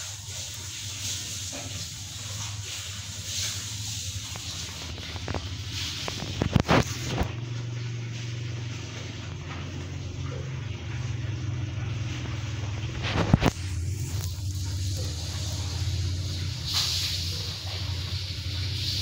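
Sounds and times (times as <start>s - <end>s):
low motor hum: 0.0s - 19.0s.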